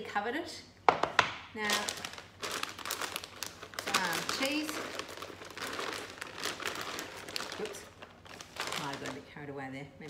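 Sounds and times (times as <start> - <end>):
plastic packet crinkling: 1.6 - 9.4.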